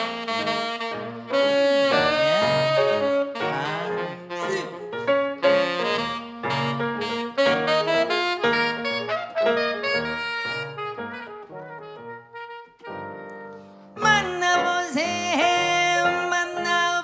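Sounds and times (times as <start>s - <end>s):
jazz accompaniment: 0.0s - 17.0s
tenor saxophone solo: 0.0s - 17.0s.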